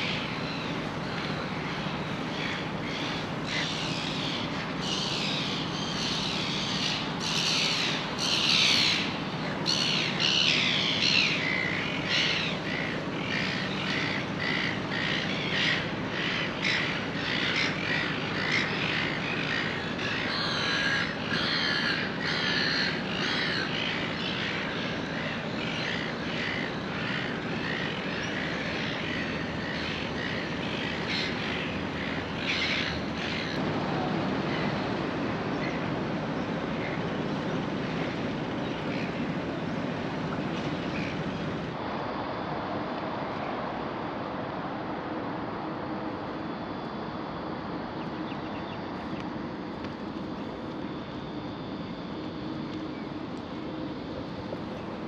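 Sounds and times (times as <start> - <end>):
birds squawking and calling: 0.0 - 33.6
steady low hum: 0.0 - 55.0.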